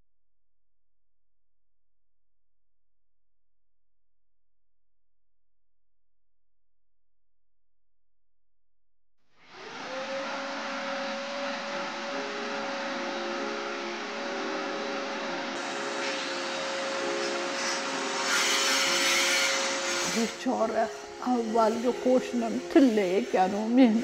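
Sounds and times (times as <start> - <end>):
whirring motor with whine: 9.4 - 24.0.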